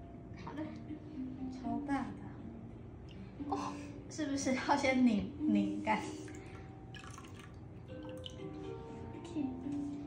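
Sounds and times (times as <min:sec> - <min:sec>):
water dripping into wooden bowl: 0:06.2 - 0:08.5.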